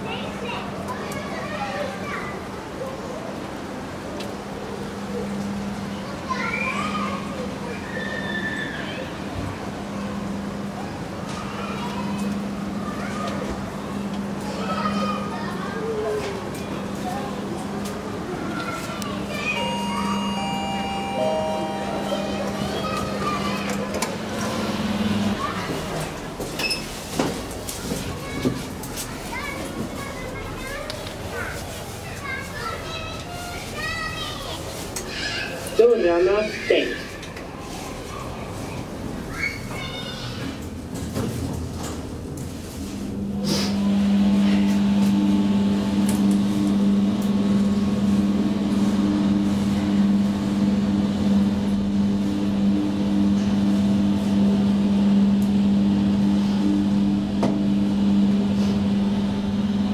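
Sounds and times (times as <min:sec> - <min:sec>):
high-pitched voices talking: 0:14.4 - 0:26.2
high-pitched gliding cries: 0:19.4 - 0:23.8
steady low hum: 0:42.0 - 0:59.9.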